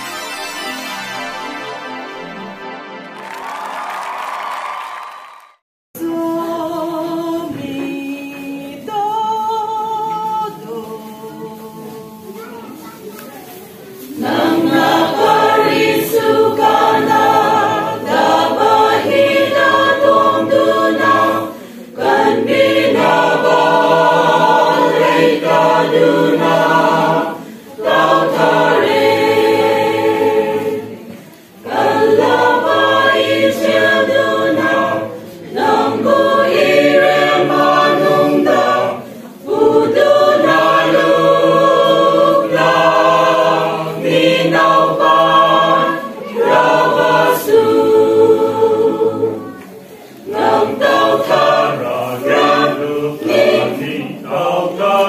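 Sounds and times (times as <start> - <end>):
choir singing a hymn: 6.0 - 12.4, 14.0 - 55.0
singers breathing: 21.5 - 22.0, 27.4 - 27.8.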